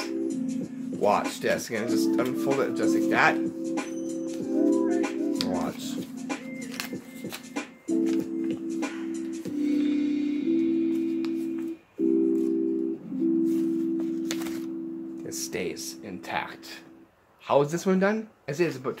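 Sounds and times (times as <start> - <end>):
keyboard chords: 0.0 - 17.2
paper crinkling: 5.3 - 8.3, 13.4 - 14.7.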